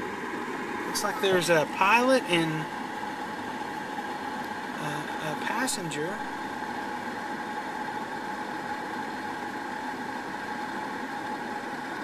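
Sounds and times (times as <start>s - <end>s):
helicopter engine and rotor drone: 0.0s - 12.0s.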